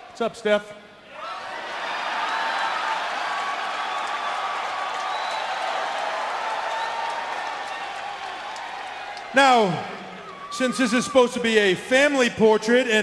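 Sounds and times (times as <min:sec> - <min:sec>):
crowd applauding and cheering: 0:01.2 - 0:11.4.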